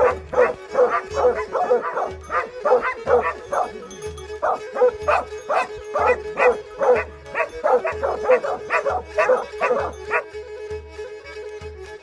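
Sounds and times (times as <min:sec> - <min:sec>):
hounds baying: 0:00.0 - 0:10.3
background music: 0:00.0 - 0:12.0.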